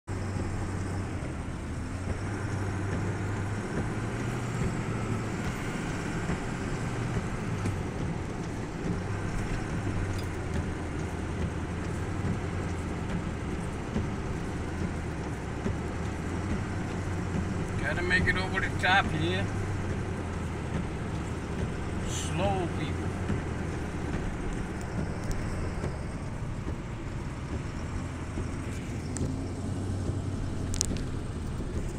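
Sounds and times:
car engine: 0.0 - 31.9
road noise: 0.0 - 31.9.

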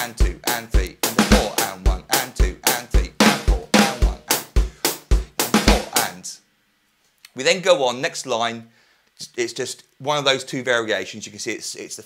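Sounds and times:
bass drum: 0.0 - 6.1
hi-hat strokes: 0.0 - 6.3
snare drum strokes: 0.5 - 6.2.

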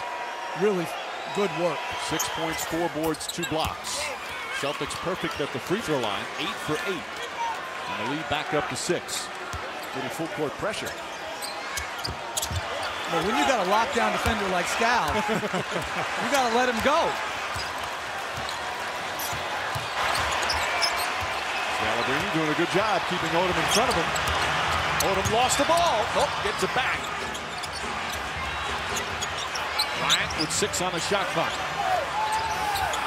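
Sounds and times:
arena crowd noise: 0.0 - 33.0.

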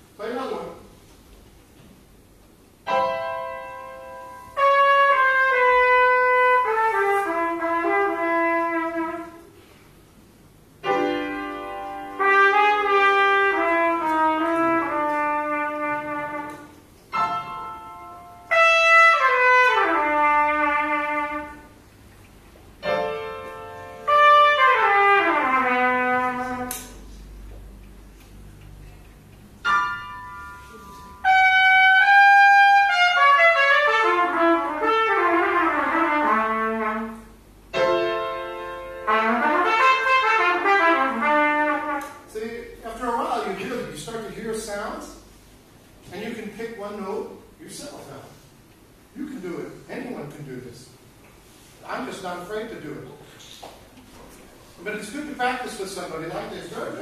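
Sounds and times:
piano chords: 2.8 - 9.5, 10.5 - 27.0, 28.9 - 44.7
trumpet playing: 2.9 - 9.6, 10.8 - 21.8, 22.8 - 27.0, 29.6 - 42.4.

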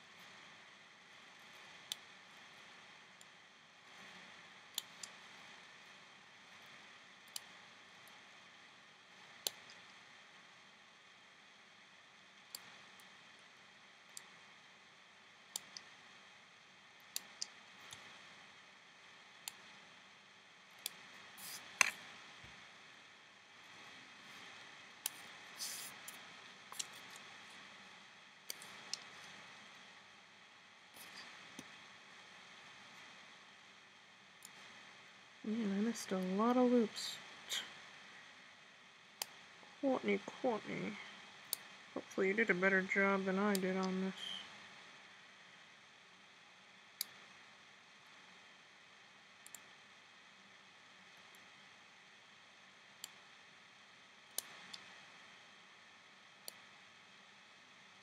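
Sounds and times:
faint hiss: 20.9 - 30.2.

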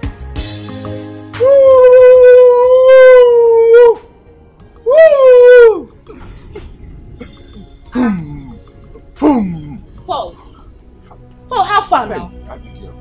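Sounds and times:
high howl-like vocal calls: 1.4 - 4.1, 4.8 - 6.0.

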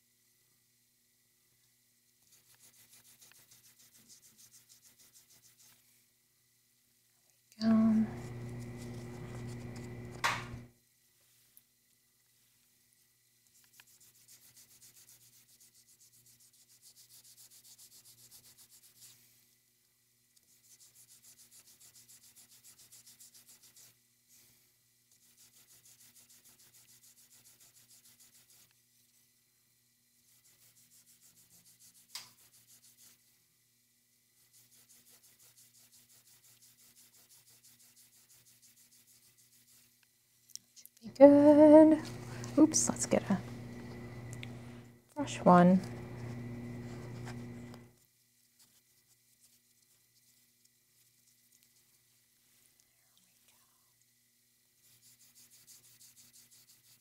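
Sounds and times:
fine rubbing strokes: 7.6 - 11.6, 41.5 - 52.7
click: 44.3 - 44.5.

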